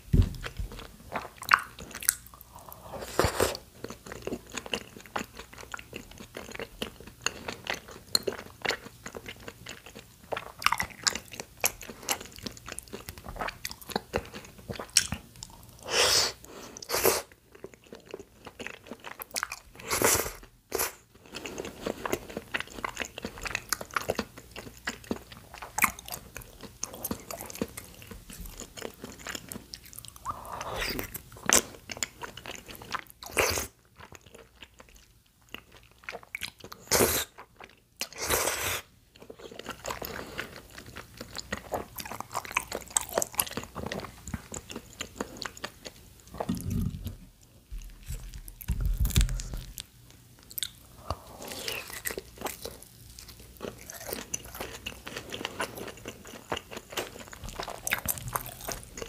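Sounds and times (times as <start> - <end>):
person chewing and crunching food: 0.2 - 59.0.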